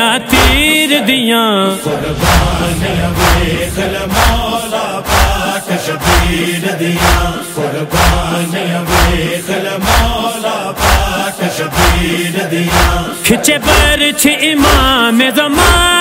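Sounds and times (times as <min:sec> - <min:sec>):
heavy low thumps: 0:01.8 - 0:05.4
sharp percussive strike: 0:01.9 - 0:05.6.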